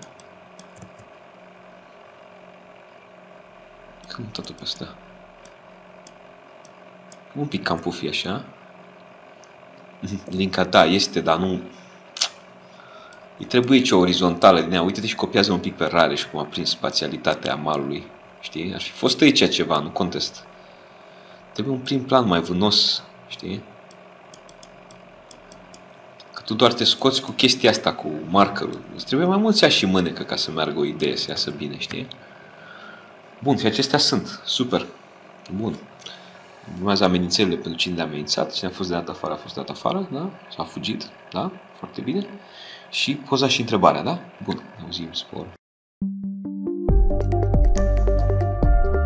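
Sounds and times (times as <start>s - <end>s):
low electrical hum: 0.0s - 45.6s
faint short clicks: 12.2s - 12.4s.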